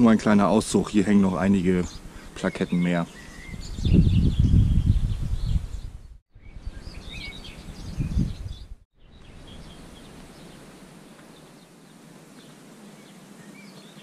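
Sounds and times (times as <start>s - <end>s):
birds chirping: 0.0s - 14.0s
wind buffeting microphone: 3.1s - 10.7s
steady hiss: 9.2s - 14.0s.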